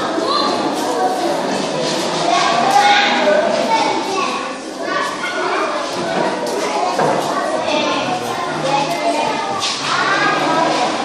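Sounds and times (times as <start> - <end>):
babble of children's voices: 0.0 - 11.0.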